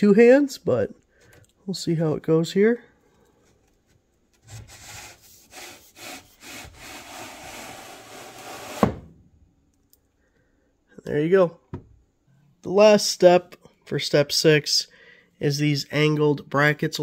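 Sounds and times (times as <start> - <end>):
wooden strip scraping along panel: 4.4 - 9.0.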